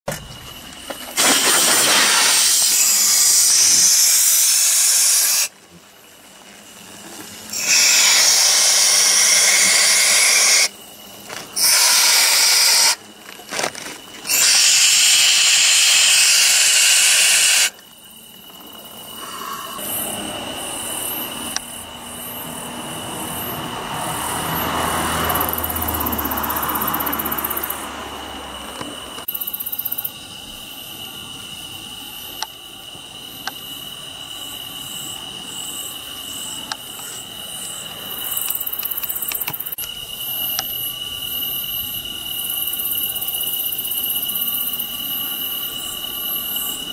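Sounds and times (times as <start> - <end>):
aerosol spray hissing: 1.2 - 5.5, 11.6 - 13.0.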